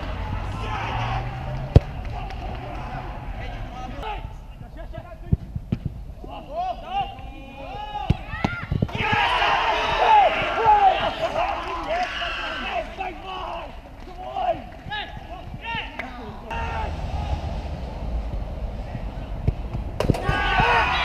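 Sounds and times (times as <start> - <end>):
players shouting: 0.0 - 4.6, 6.2 - 21.0.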